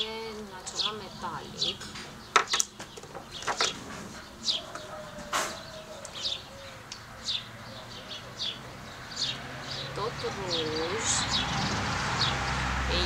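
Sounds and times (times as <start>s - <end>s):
songbird chirping: 0.0s - 13.0s.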